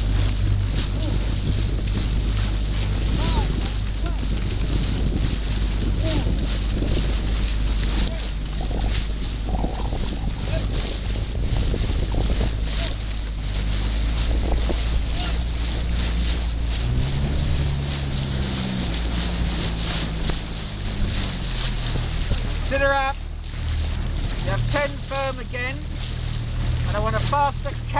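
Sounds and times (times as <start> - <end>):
motor boat engine running: 0.0 - 27.9
wind on microphone: 0.0 - 27.9.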